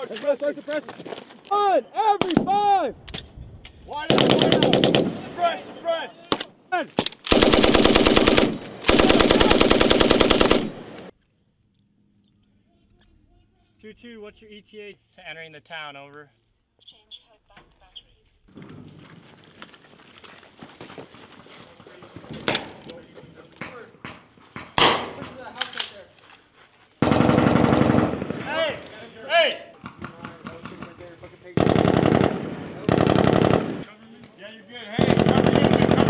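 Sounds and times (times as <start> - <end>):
gunshots: 4.0 - 5.4, 7.2 - 11.1, 24.6 - 25.3, 27.0 - 28.7, 29.8 - 33.8, 35.0 - 36.0
machine gun automatic bursts: 4.1 - 5.1, 7.3 - 11.1, 27.0 - 28.3, 31.6 - 33.8, 35.0 - 36.0.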